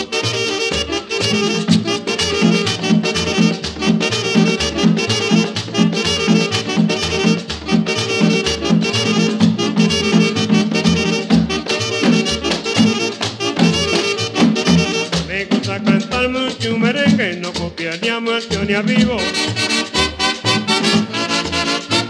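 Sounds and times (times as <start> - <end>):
horns playing: 0.0 - 17.6, 18.5 - 22.0
drum and scraper fast beat: 0.0 - 22.0.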